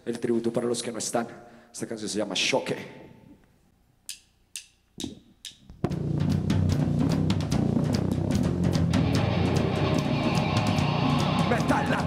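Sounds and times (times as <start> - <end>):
drummer count-in clicks: 4.0 - 6.0
heavy kick drum: 5.7 - 12.0
nu-metal band playing: 7.4 - 12.0.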